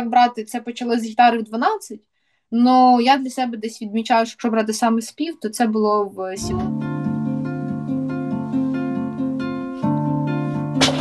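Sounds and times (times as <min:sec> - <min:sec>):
acoustic guitar fingerpicked: 0:06.4 - 0:11.0.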